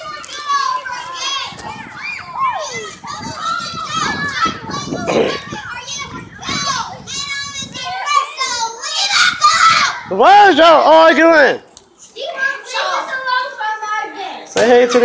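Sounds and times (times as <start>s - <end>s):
children shouting and chattering: 0.0s - 15.0s.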